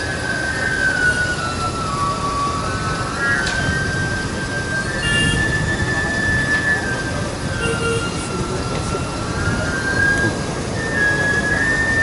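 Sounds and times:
high sustained whistle: 0.0s - 12.0s
wind buffeting microphone: 3.6s - 12.0s.

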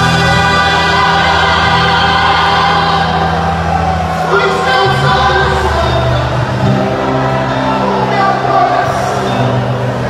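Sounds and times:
voices singing together: 0.0s - 6.6s
gospel band playing: 0.0s - 10.0s.

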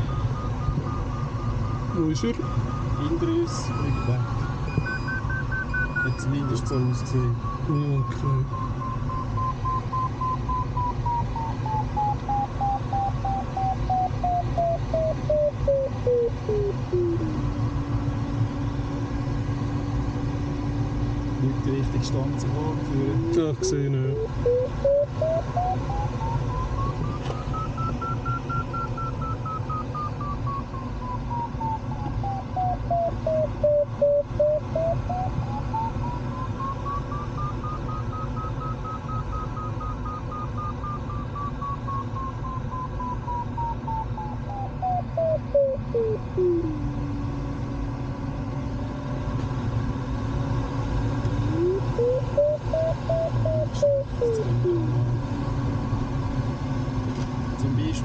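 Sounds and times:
variometer tone sliding in pitch: 0.0s - 19.0s, 20.4s - 48.1s, 51.2s - 56.0s.

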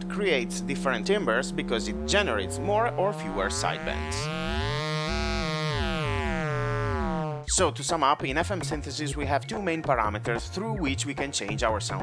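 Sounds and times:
analog synthesizer tone: 0.0s - 7.8s.

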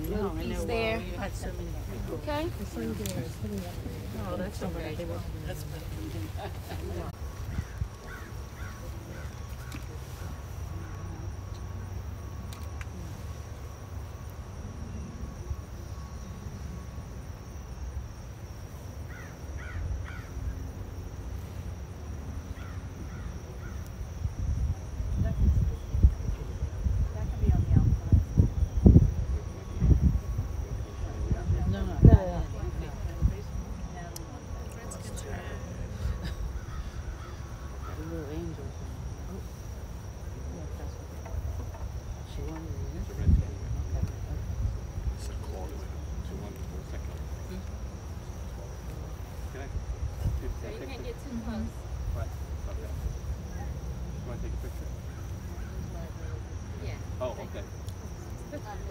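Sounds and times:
insects droning: 0.0s - 58.9s
low wind rumble: 0.0s - 58.9s
bird calling: 1.6s - 11.1s, 35.9s - 38.5s.

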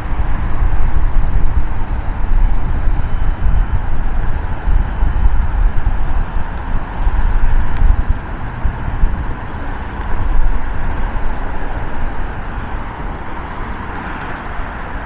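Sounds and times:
heavy low rumble: 0.0s - 14.7s
freeway traffic roar: 0.0s - 15.0s.

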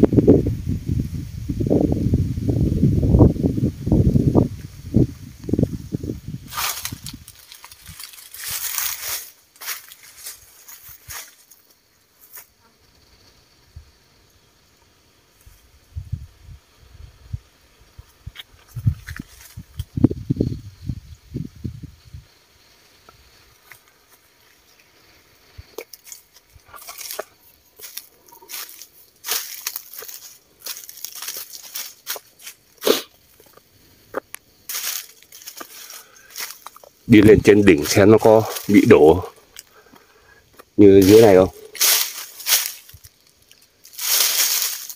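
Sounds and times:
wind buffeting microphone: 0.0s - 8.6s, 15.8s - 22.3s
footsteps in dry leaves: 6.2s - 12.5s, 25.8s - 33.6s, 34.6s - 40.0s, 40.6s - 44.9s.

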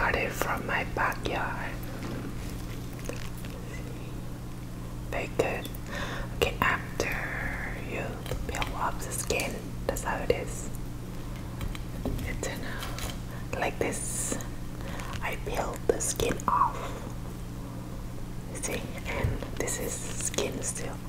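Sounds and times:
person whispering: 0.0s - 1.8s, 5.2s - 5.7s, 6.4s - 10.7s, 15.2s - 17.0s, 18.5s - 21.0s
low hum: 0.0s - 21.0s.

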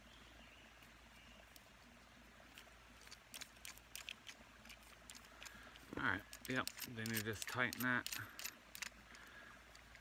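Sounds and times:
fishing reel metal clicks: 5.1s - 10.0s.

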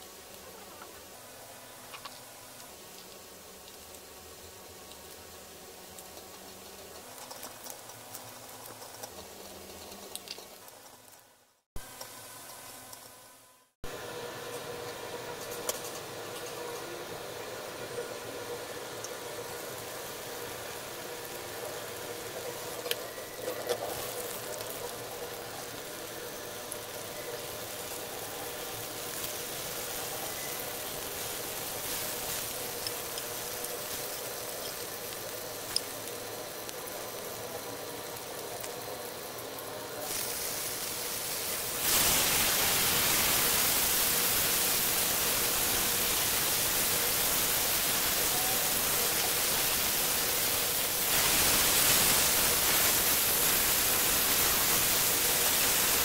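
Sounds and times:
steak sizzling in hot fat: 0.0s - 11.2s, 13.9s - 56.0s
butter sizzling in a pan: 0.0s - 56.0s.

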